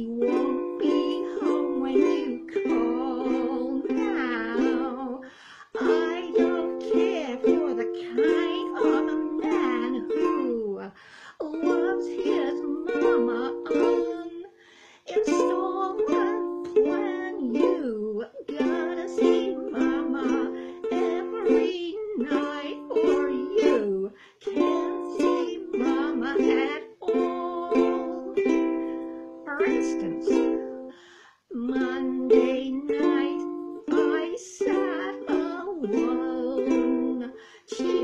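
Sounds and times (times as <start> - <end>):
ukulele strumming chords: 0.0 - 10.8, 11.4 - 14.5, 15.1 - 38.0
woman singing: 0.0 - 38.0.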